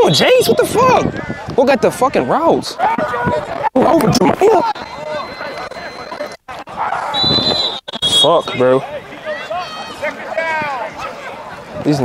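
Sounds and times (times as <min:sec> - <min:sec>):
players shouting: 0:00.0 - 0:12.0.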